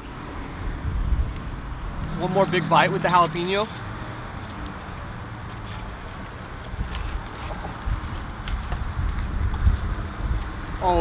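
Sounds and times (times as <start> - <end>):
low rumbling thumps: 0.0 - 4.0
outdoor background noise: 0.0 - 11.0.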